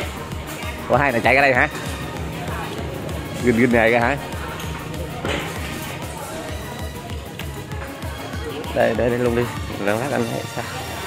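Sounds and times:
music with steady bass beat: 0:00.0 - 0:11.0
restaurant chatter: 0:00.0 - 0:11.0.

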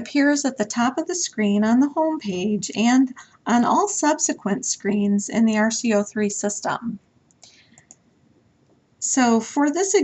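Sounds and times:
computer mouse clicks: 0:07.3 - 0:08.1.

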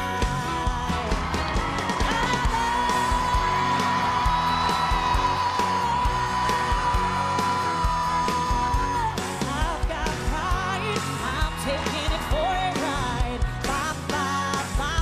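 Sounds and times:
full band playing: 0:00.0 - 0:15.0
woman singing: 0:00.0 - 0:15.0.

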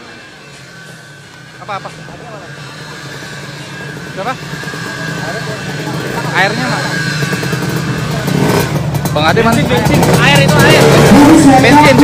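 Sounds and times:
motorcycle engine running: 0:00.0 - 0:12.0
voices calling: 0:00.0 - 0:12.0.

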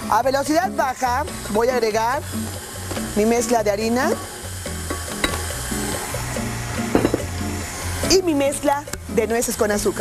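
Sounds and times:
background music with bass line: 0:00.0 - 0:09.4.

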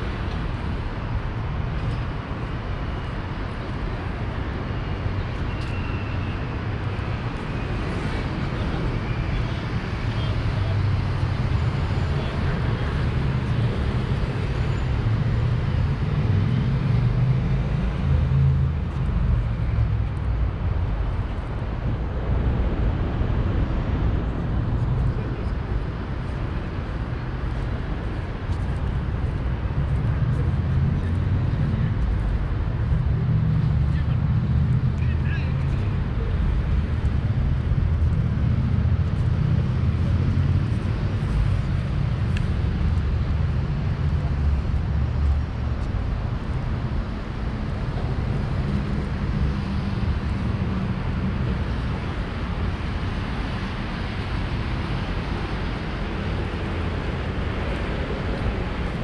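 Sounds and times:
road traffic rumble: 0:00.0 - 0:59.0.

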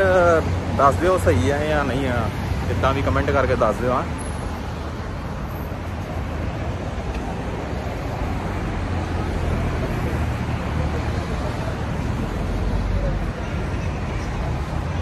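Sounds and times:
passing cars rumbling: 0:00.0 - 0:15.0.

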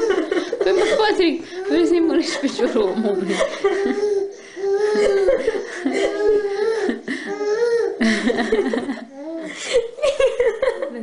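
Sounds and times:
baby cooing and laughing: 0:00.0 - 0:01.0, 0:02.6 - 0:10.0.

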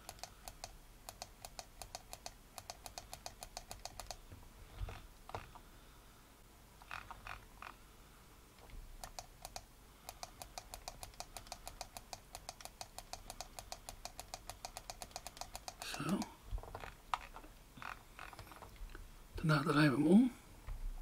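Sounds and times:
computer keys clicking: 0:00.0 - 0:04.2, 0:08.6 - 0:17.5.

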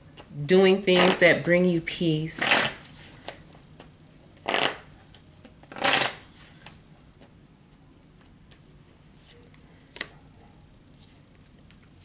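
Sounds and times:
cards being shuffled: 0:05.6 - 0:06.7.

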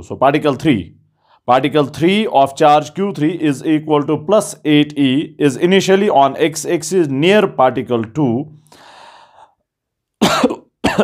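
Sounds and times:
man coughing: 0:10.2 - 0:11.0.

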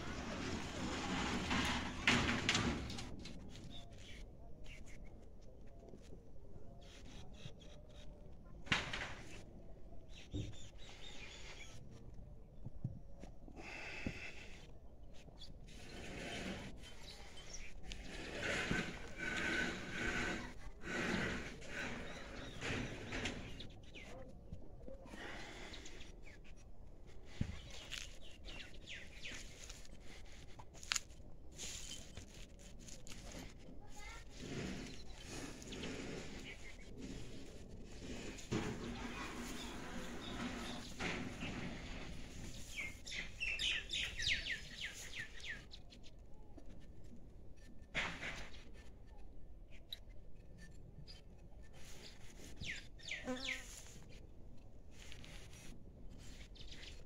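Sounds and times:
farmyard ambience: 0:00.0 - 0:57.0
birds chirping: 0:13.6 - 0:24.3, 0:24.9 - 0:46.2, 0:49.8 - 0:54.2.

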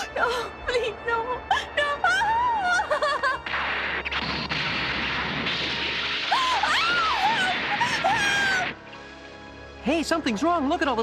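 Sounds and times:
background music: 0:00.0 - 0:11.0
woman screaming: 0:06.3 - 0:08.8.

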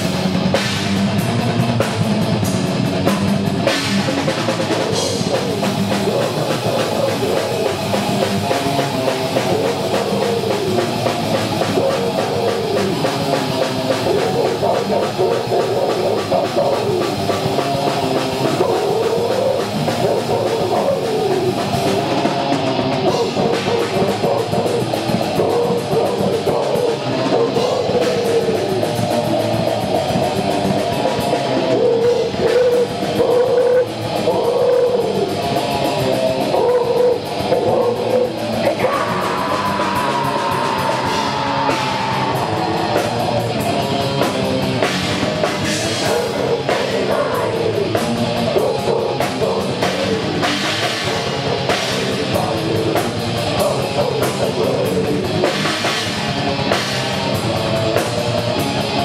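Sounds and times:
death metal band playing: 0:00.0 - 0:59.0
winding guitar riff: 0:03.6 - 0:59.0.

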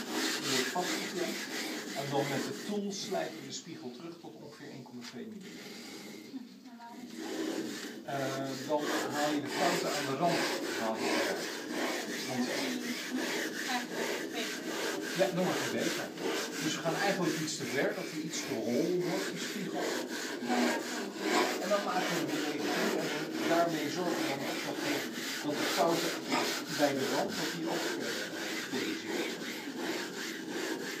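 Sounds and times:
glass grinding scraping rub: 0:00.0 - 0:04.0, 0:07.0 - 0:31.0.

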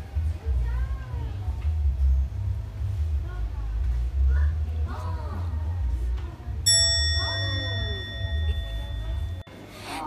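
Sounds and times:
low hum: 0:00.0 - 0:09.5
bright ding: 0:06.7 - 0:09.5.

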